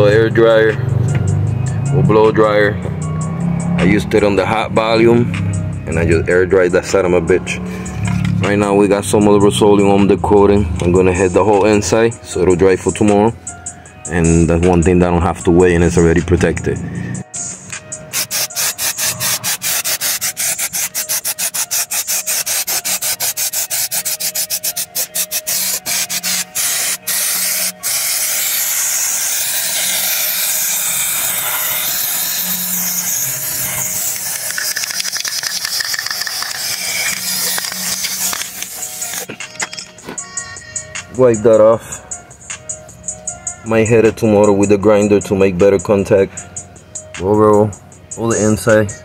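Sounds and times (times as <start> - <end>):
spray can hissing: 18.1 - 39.7
spray can rattling: 18.1 - 39.9.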